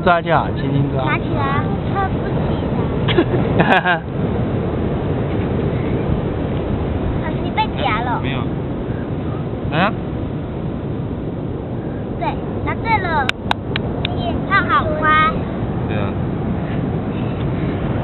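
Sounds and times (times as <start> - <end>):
low outdoor rumble: 0.0 - 18.0.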